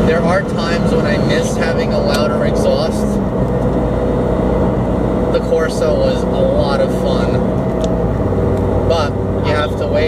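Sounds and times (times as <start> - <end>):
car engine droning while driving: 0.0 - 10.0.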